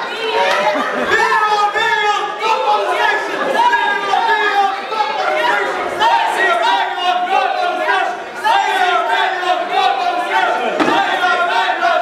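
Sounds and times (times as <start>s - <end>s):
raised voices calling out: 0.0s - 12.0s.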